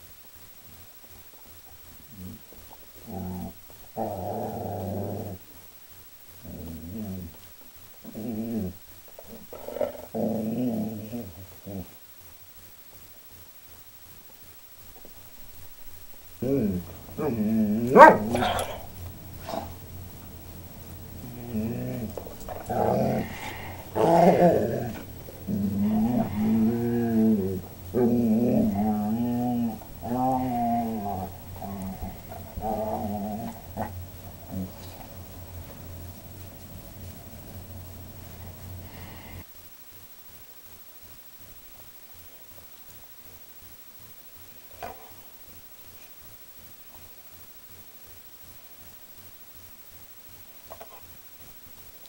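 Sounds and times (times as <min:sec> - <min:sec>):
dog growling: 0:02.1 - 0:05.4, 0:06.4 - 0:07.4, 0:08.0 - 0:12.0, 0:15.0 - 0:39.4.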